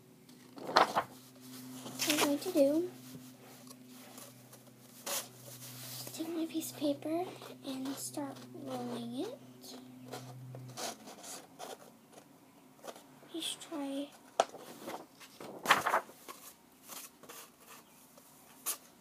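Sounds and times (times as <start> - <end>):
paper rustling and crinkling: 0.4 - 6.2, 14.3 - 17.9.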